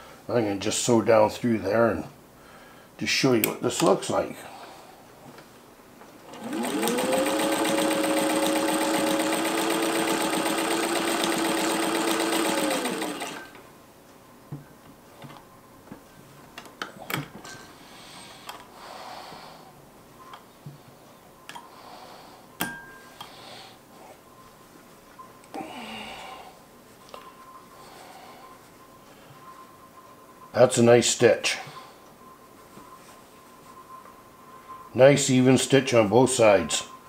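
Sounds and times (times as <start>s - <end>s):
handling of machine and fabric: 5.4s - 13.7s
sewing machine sewing: 6.2s - 13.6s.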